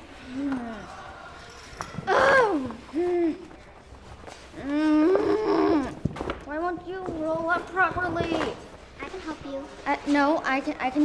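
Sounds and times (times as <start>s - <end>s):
child vocalising: 2.0s - 3.4s, 4.6s - 6.0s.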